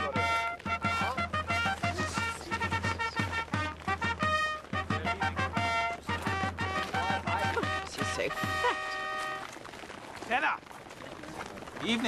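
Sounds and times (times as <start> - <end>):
brass chord: 0.0 - 9.5
faint background noise: 0.0 - 12.0.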